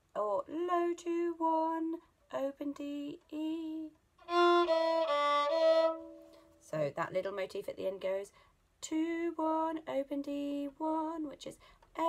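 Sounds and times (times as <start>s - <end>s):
violin bowed notes: 4.2s - 6.6s.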